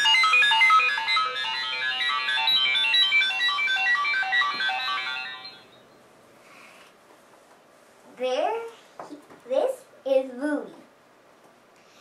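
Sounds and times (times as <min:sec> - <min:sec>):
bright chime-like music jingle: 0:00.0 - 0:05.8.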